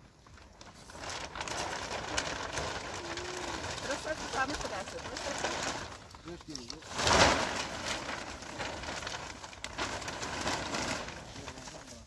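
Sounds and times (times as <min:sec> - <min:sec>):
plastic sheet rustling and crackling: 0:00.0 - 0:12.0.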